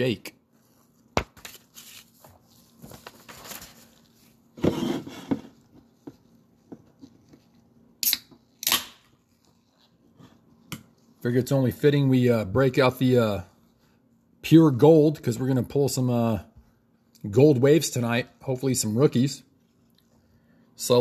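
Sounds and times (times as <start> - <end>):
paper rustling: 0.6 - 4.4.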